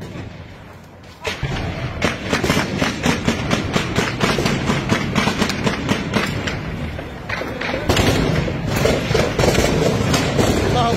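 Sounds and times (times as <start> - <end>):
gunshots: 1.2 - 10.9.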